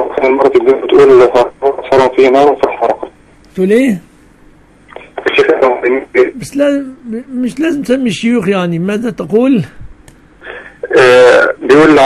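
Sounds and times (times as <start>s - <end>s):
person talking over phone: 0.0s - 3.9s, 4.9s - 8.1s, 10.4s - 12.0s.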